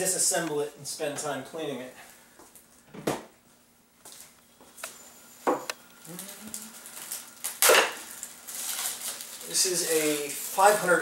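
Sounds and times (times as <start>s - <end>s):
faint steady hum: 0.0s - 11.0s.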